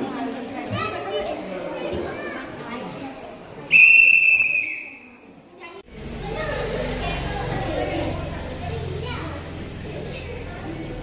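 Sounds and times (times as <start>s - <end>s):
children and adults chattering: 0.0s - 11.0s
loud high whistle blast: 3.7s - 5.1s.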